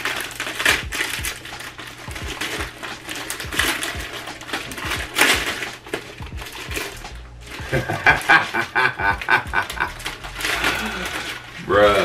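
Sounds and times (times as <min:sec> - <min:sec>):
man laughing: 0:07.6 - 0:10.0
man breathing hard: 0:10.4 - 0:11.6.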